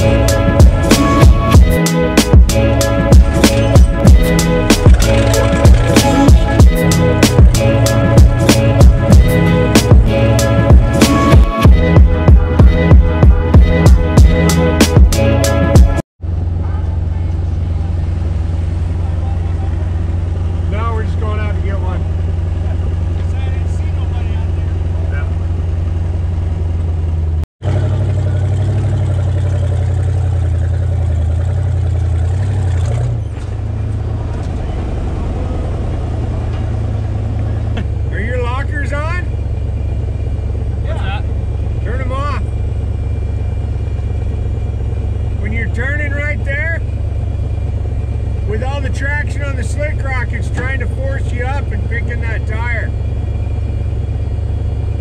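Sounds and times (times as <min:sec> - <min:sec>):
engines idling low rumble: 0:00.0 - 0:55.0.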